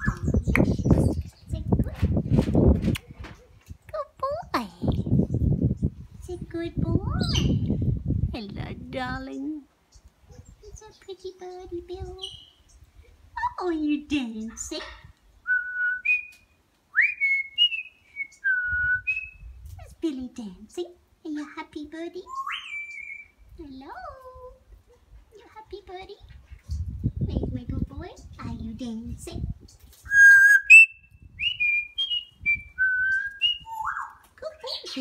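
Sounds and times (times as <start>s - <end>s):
whistled notes: 17.0s - 19.4s, 30.1s - 34.0s.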